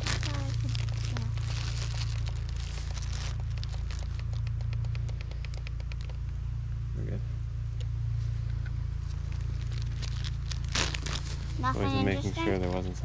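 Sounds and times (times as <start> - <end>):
hands rustling: 0.0 - 6.2
steady low rumble: 0.0 - 13.0
small irregular clicks: 0.3 - 6.4.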